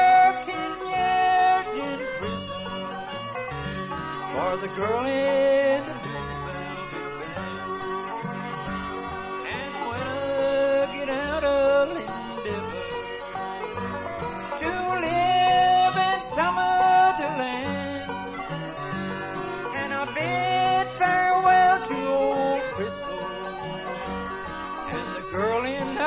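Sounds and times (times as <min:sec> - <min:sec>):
banjo rolls: 0:00.0 - 0:26.0
bluegrass band playing: 0:00.0 - 0:26.0
fiddle sliding notes: 0:00.0 - 0:26.0.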